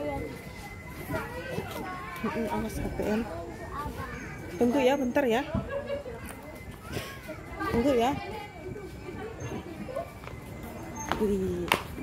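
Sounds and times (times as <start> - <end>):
children's voices: 0.0 - 4.9, 5.6 - 10.3
background chatter: 0.0 - 12.0.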